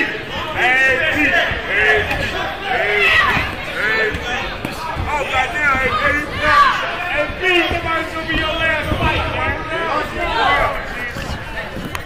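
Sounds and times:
overlapping shouting voices: 0:00.0 - 0:11.2.

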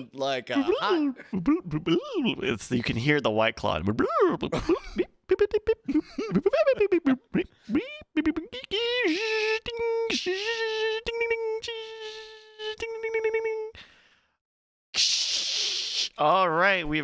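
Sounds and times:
person imitating a beep tone: 0:06.9 - 0:13.8
mouth clicks and pops: 0:15.0 - 0:16.2.

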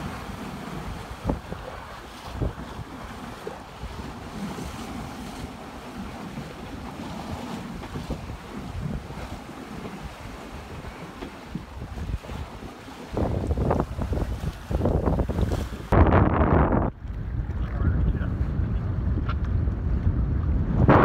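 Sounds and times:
water washing along hull: 0:00.0 - 0:21.0
wind buffeting microphone: 0:00.0 - 0:21.0.

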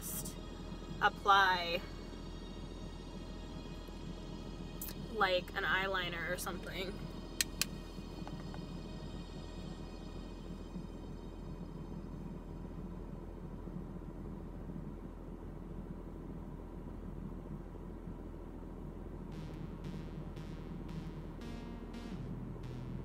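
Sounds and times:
soft background music: 0:00.0 - 0:18.4, 0:19.0 - 0:23.0.

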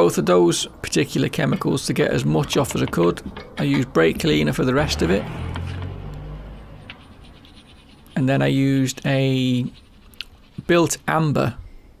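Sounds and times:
stiff brush scrubbing metal: 0:01.0 - 0:11.4.

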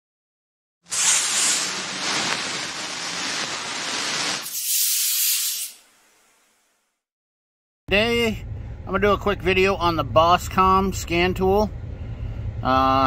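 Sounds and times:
loud rushing hiss: 0:00.9 - 0:06.5.

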